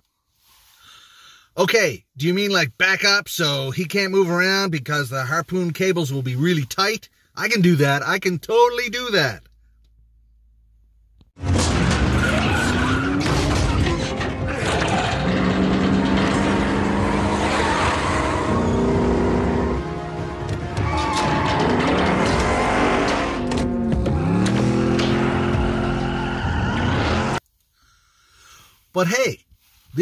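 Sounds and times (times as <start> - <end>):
car engine revving: 11.4 - 27.4
film score music: 11.4 - 27.4
tires squealing: 11.4 - 27.4.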